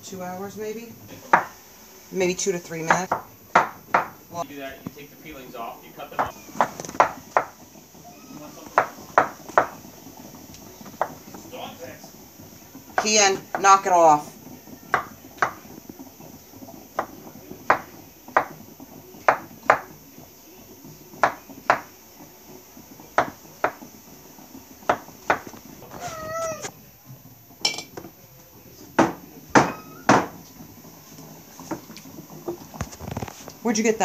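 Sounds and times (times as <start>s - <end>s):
knife chopping on wooden board: 3.1s - 4.2s.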